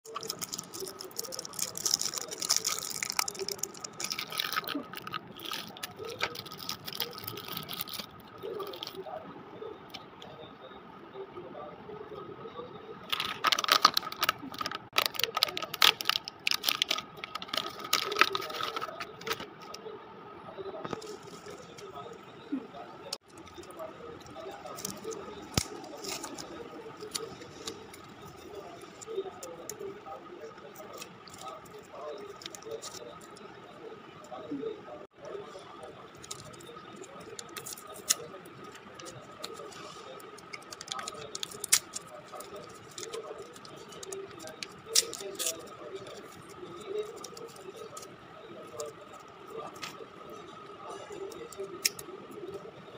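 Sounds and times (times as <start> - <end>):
sweet wrappers crinkling: 0.0 - 9.0, 13.1 - 19.8, 23.1 - 34.6, 35.2 - 52.9.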